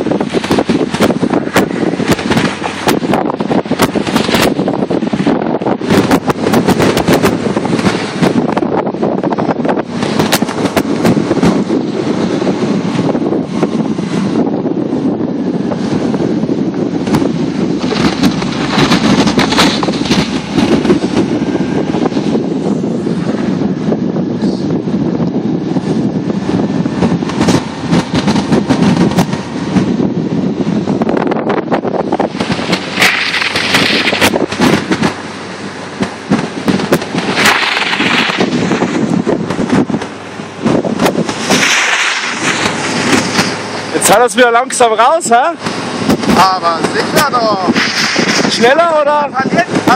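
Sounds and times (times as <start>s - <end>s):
car running: 0.0s - 49.9s
wind buffeting microphone: 0.0s - 49.9s
tyres on packed snow: 15.7s - 24.8s, 32.0s - 49.9s
crackling: 17.0s - 22.4s, 32.2s - 35.2s, 35.9s - 49.9s
short bursts of hissing: 41.3s - 43.9s, 47.7s - 48.6s.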